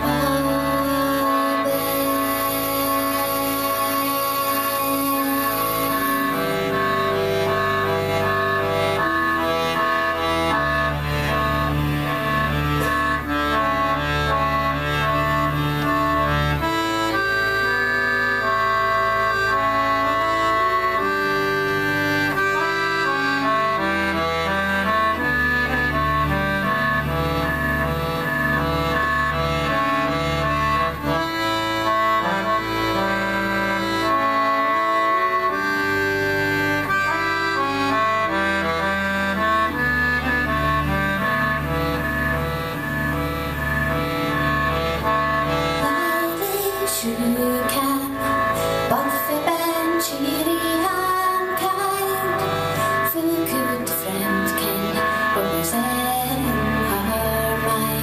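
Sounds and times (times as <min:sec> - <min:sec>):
accordion folk music: 0:00.0 - 0:58.0.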